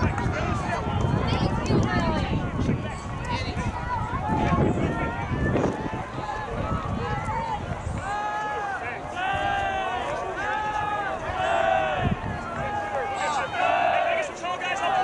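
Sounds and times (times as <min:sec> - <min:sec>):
wind buffeting microphone: 0:00.0 - 0:14.2
voices shouting long calls: 0:08.0 - 0:15.0.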